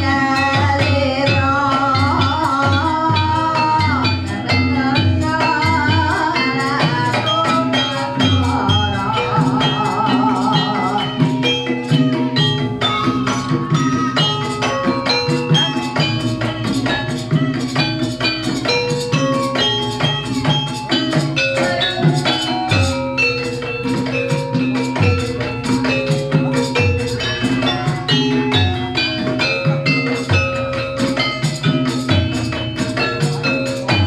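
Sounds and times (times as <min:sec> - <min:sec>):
metallophones struck in quick notes: 0:00.0 - 0:34.0.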